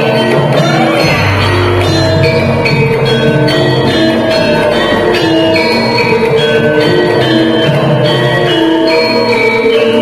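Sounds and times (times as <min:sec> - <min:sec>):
gamelan metallophone melody: 0:00.0 - 0:10.0.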